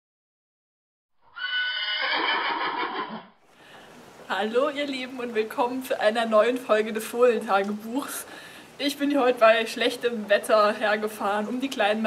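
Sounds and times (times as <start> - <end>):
horse neighing: 1.2 - 3.4.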